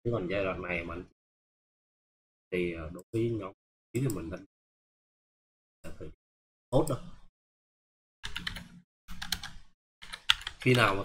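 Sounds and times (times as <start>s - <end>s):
keyboard typing: 8.2s - 11.0s.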